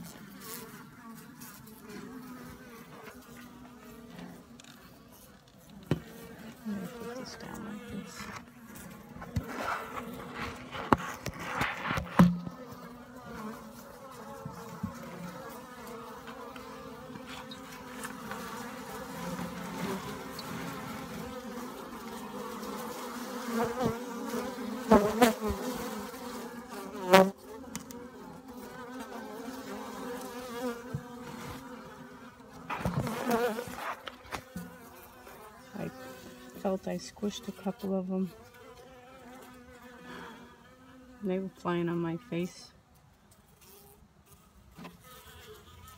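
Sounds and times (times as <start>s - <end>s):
honeybees buzzing: 0.0s - 42.6s
sharp knocks and bumps: 10.5s - 12.5s.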